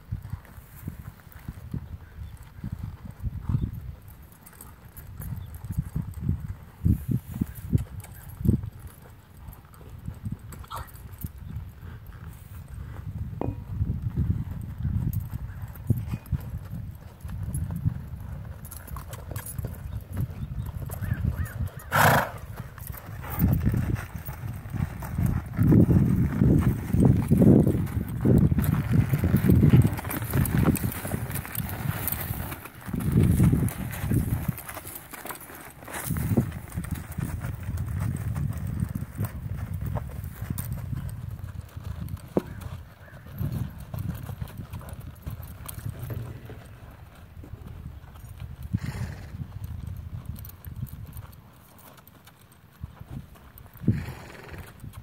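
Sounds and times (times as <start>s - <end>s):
horse hooves on dirt: 0.0s - 55.0s.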